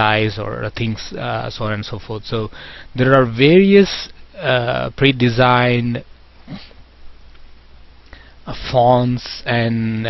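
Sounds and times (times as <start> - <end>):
low electrical hum: 0.0 - 10.0
microphone hiss: 0.0 - 10.0
person sniffing: 6.4 - 6.8.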